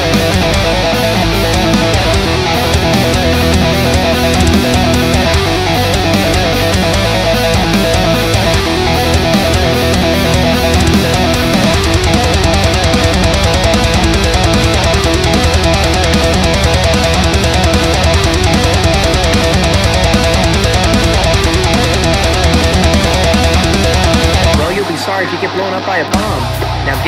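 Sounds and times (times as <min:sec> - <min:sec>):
heavy metal music: 0:00.0 - 0:27.0.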